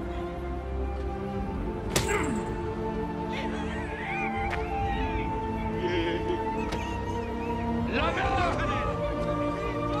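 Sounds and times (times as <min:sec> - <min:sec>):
crowd jeering cries: 0:03.3 - 0:09.0.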